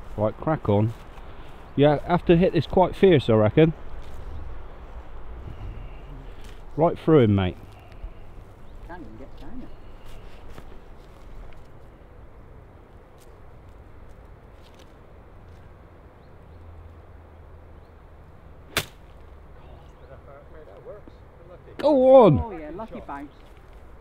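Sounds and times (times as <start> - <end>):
golf club striking ball: 18.7 - 19.2.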